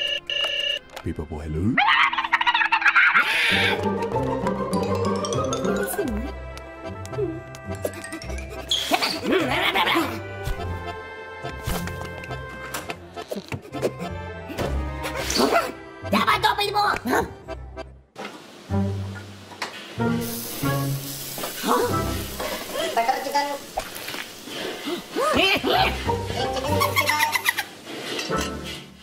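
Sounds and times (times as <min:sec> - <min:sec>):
cartoon background music: 0:01.0 - 0:18.0, 0:25.4 - 0:27.6.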